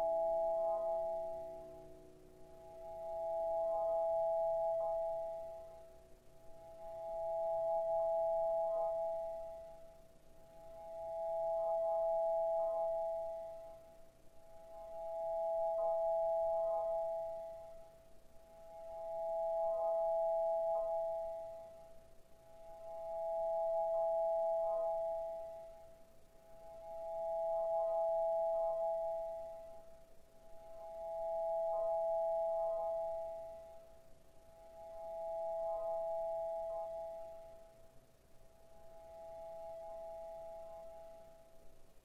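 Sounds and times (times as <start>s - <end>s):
bell-like electronic tone: 0.0s - 5.7s.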